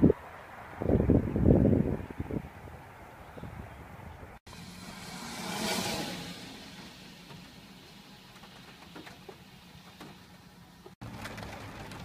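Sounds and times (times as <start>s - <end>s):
car tyres hissing on wet road: 4.5s - 10.0s.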